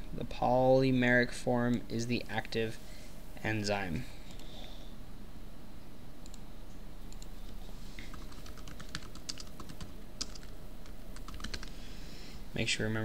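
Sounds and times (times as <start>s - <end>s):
typing on computer keyboard: 8.0s - 11.8s.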